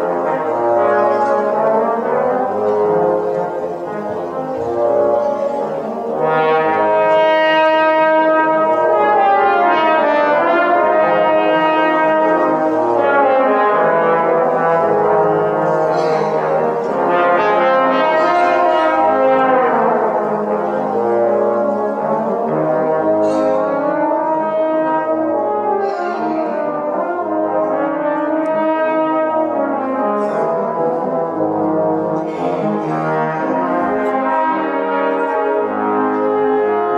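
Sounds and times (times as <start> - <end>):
trombone quintet playing jazz: 0.0 - 36.9.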